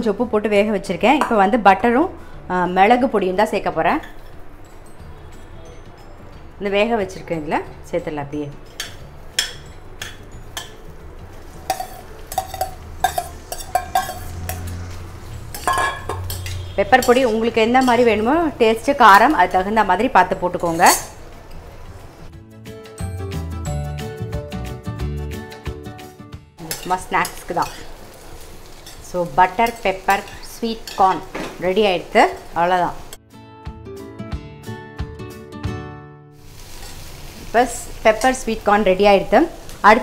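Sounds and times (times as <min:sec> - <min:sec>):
woman speaking: 0:00.0 - 0:04.0, 0:06.6 - 0:08.6, 0:16.8 - 0:21.1, 0:26.6 - 0:27.8, 0:29.1 - 0:33.0, 0:37.5 - 0:40.0
spoon stirring: 0:08.7 - 0:14.9, 0:15.5 - 0:18.2, 0:26.6 - 0:31.3
corn sizzling in butter: 0:26.6 - 0:33.2, 0:36.4 - 0:40.0.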